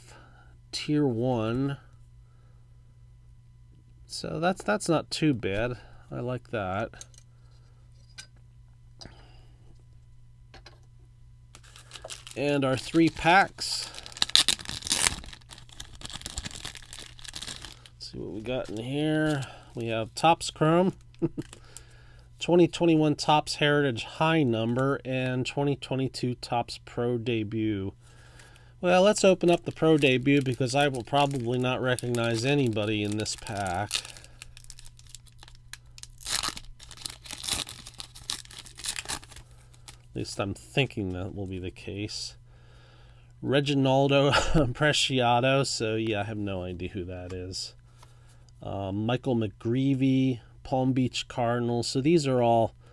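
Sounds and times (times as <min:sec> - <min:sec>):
plastic wrapper crinkling: 0:11.6 - 0:21.9, 0:28.4 - 0:40.1.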